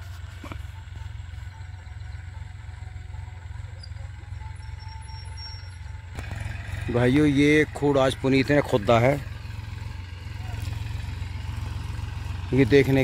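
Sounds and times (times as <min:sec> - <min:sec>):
distant tractor engine running: 0:00.0 - 0:13.0.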